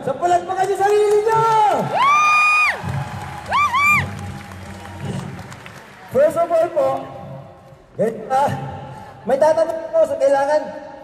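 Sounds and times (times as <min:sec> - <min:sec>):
crowd noise: 0:00.0 - 0:11.0
shouted whoops: 0:01.7 - 0:04.2.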